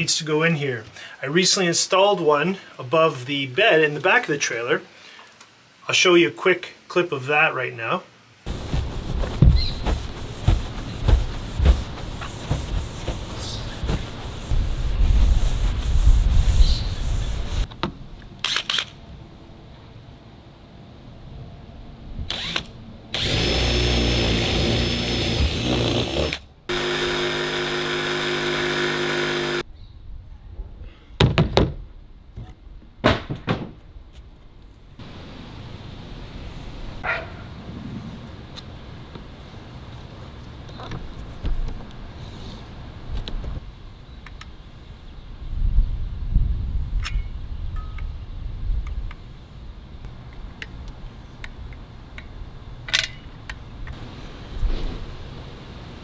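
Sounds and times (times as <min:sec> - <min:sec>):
rough power tool cutting: 0:23.2 - 0:29.6
steady motor whine: 0:26.3 - 0:29.6.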